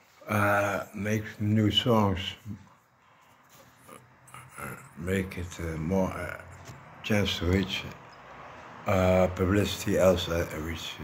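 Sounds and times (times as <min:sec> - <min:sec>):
man's voice trailing off: 0:00.2 - 0:02.6.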